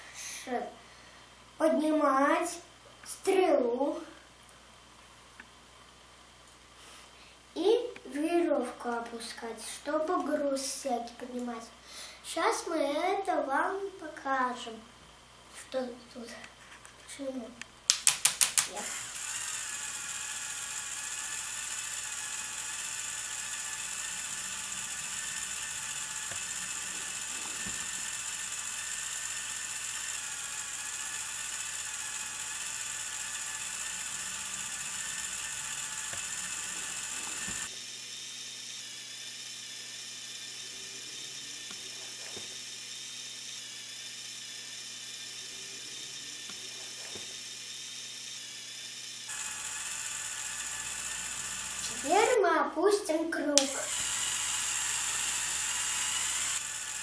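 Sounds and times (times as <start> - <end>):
plastic gears whirring and ratcheting: 17.9 - 52.4, 53.4 - 57.0.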